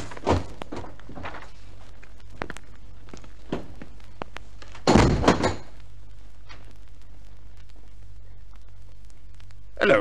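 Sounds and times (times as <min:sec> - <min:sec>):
low steady hum: 0:00.0 - 0:10.0
heavy door clanking bang: 0:04.8 - 0:05.7.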